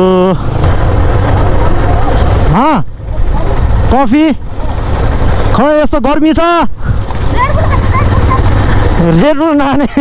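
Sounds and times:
motorcycle engines: 0:00.0 - 0:10.0
wind rumble: 0:06.7 - 0:09.1.

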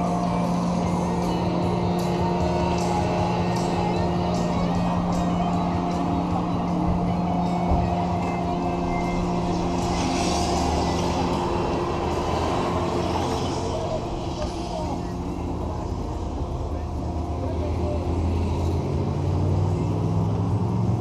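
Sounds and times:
engine idling: 0:00.0 - 0:19.9.

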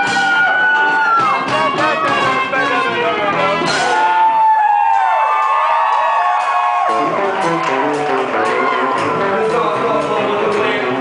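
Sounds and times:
trumpet: 0:00.0 - 0:04.4
bass: 0:00.0 - 0:11.0
drums: 0:00.0 - 0:11.0
electric guitar: 0:06.6 - 0:11.0.

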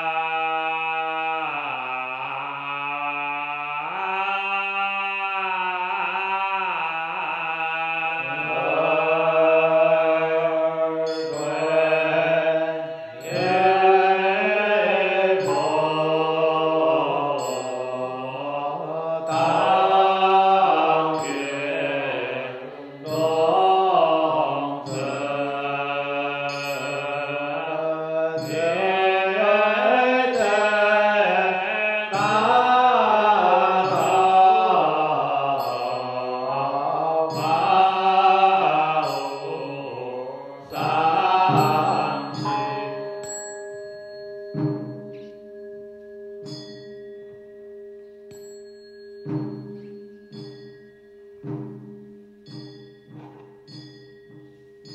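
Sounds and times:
group chanting in unison: 0:00.0 - 0:43.1.

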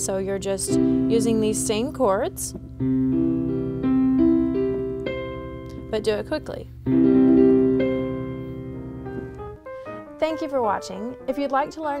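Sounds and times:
piano notes ringing: 0:00.0 - 0:12.0.

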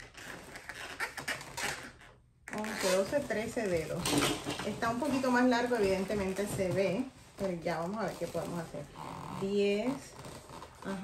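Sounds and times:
hands tapping and sliding on balloon: 0:00.0 - 0:11.0.

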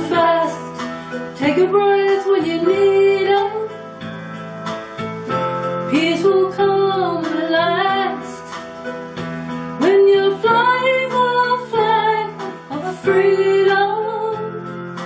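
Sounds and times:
woman singing slow song: 0:00.0 - 0:03.8, 0:05.9 - 0:08.6, 0:09.8 - 0:14.8.

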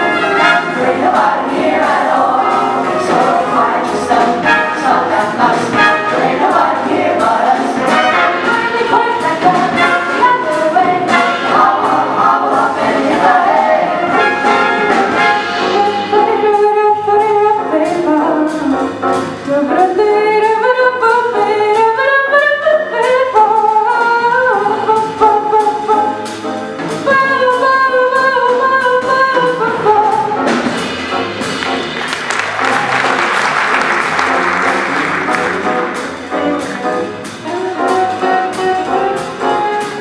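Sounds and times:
steady beat: 0:00.0 - 0:16.4, 0:30.7 - 0:40.0
vocal group singing in harmony: 0:00.0 - 0:18.4
bass guitar: 0:00.0 - 0:40.0.

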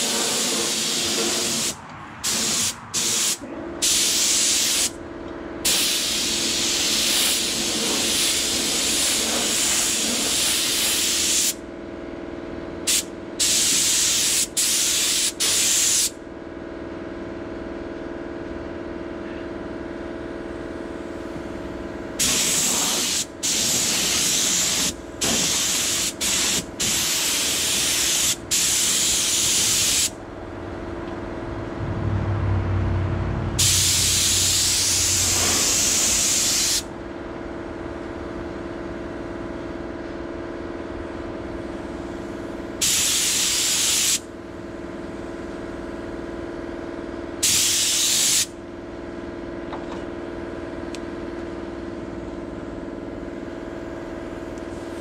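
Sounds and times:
paint spray hissing: 0:00.0 - 0:04.9, 0:05.7 - 0:11.6, 0:12.9 - 0:16.1, 0:22.2 - 0:30.1, 0:33.6 - 0:36.8, 0:42.8 - 0:44.2, 0:47.4 - 0:48.5
steady hum: 0:19.2 - 0:37.3.

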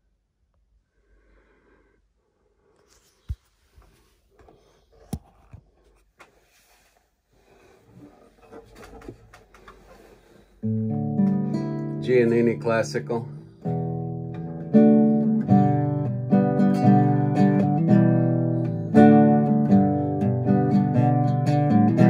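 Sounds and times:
guitar handling rustling: 0:02.8 - 0:10.8
guitar chord strummed: 0:10.6 - 0:22.0.

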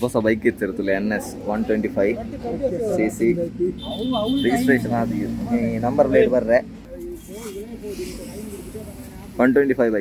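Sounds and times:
faint background speech: 0:00.0 - 0:10.0.

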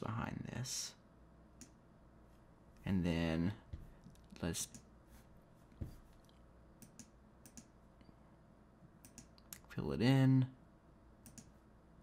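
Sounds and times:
computer mouse clicks: 0:06.1 - 0:07.8, 0:09.0 - 0:09.7, 0:11.2 - 0:11.6.

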